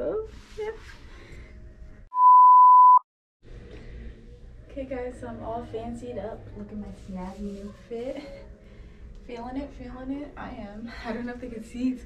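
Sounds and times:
loud high test tone beep: 0:02.1 - 0:03.0.

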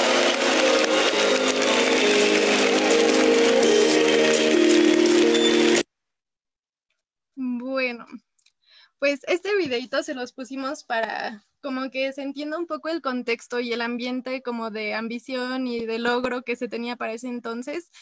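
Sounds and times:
crowd applauding and cheering: 0:00.0 - 0:05.8
music with sustained notes: 0:00.0 - 0:05.8.

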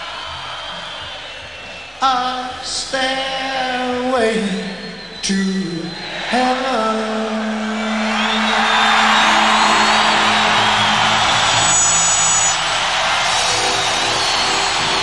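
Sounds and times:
stadium crowd cheering and applauding: 0:00.0 - 0:15.0.

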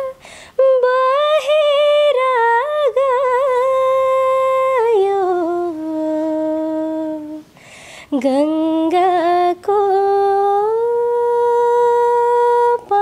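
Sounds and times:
woman singing unaccompanied: 0:00.0 - 0:13.0.

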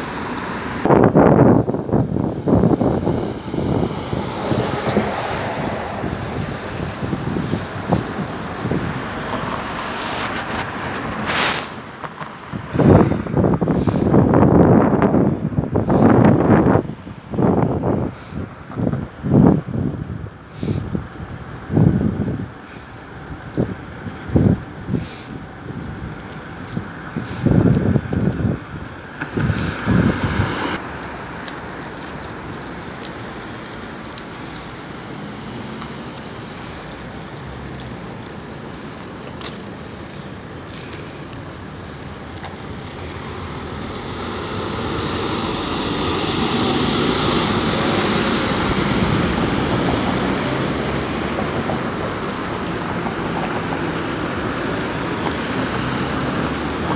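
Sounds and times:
city bus running: 0:00.0 - 0:56.9
traffic: 0:00.0 - 0:56.9
wind buffeting on microphone: 0:00.0 - 0:56.9.

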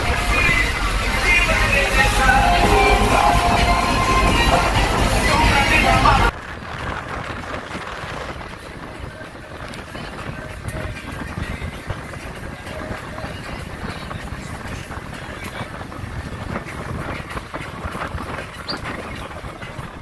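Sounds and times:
water rushing past boat: 0:00.0 - 0:20.0
wind buffeting microphone: 0:00.0 - 0:20.0
wind rushing: 0:00.0 - 0:20.0.

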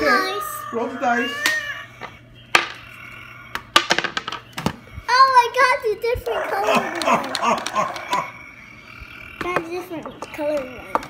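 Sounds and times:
die rattling and tumbling: 0:03.6 - 0:04.8.

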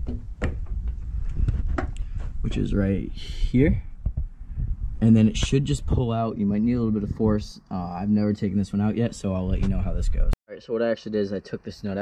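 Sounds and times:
low rumble: 0:00.7 - 0:07.5.

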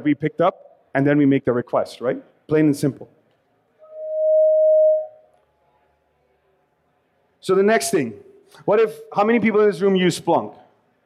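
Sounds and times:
microphone feedback tone: 0:03.8 - 0:05.3.

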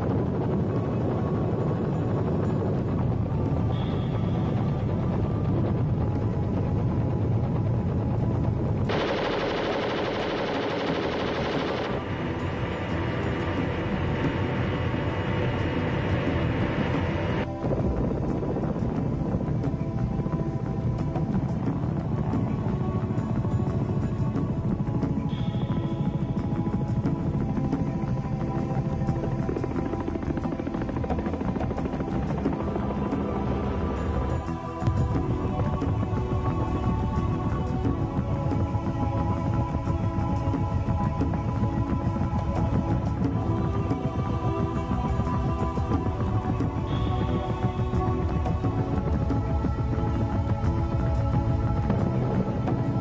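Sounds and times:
background music: 0:00.0 - 0:53.0
helicopter rotor and engine: 0:00.0 - 0:53.0.

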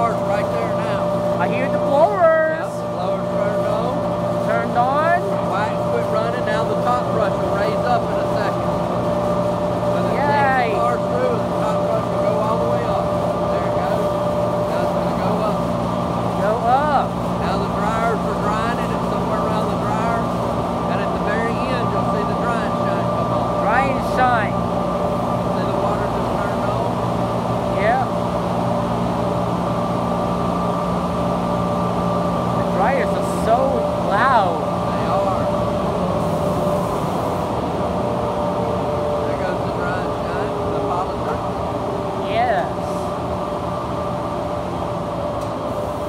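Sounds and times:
car wash machinery hum: 0:00.0 - 0:46.0.

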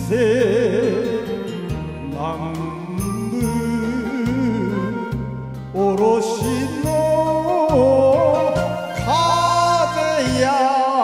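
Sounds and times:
low bass backing track: 0:00.0 - 0:10.6
wavering melody: 0:06.4 - 0:10.6.

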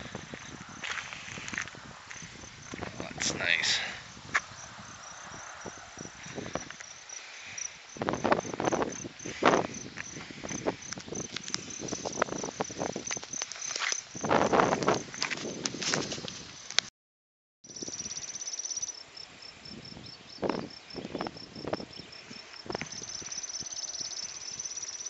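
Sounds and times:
insect chirping high: 0:00.0 - 0:15.3, 0:17.7 - 0:25.0
rustling and crackling: 0:08.1 - 0:16.9.

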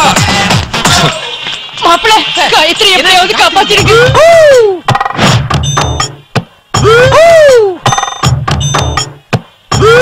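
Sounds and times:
comedy background music: 0:00.0 - 0:06.2
sharp percussive knocks: 0:04.9 - 0:07.0, 0:07.8 - 0:09.9.

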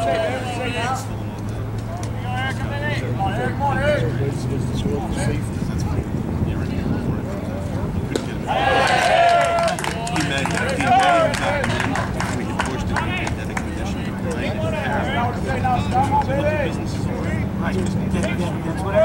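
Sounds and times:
low outdoor rumble: 0:00.0 - 0:19.0
voices calling and chattering: 0:00.0 - 0:19.0.

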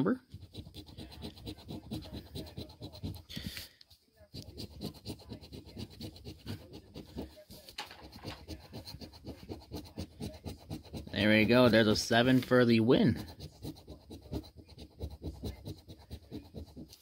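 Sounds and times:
coin scratching lottery ticket: 0:00.0 - 0:17.0.

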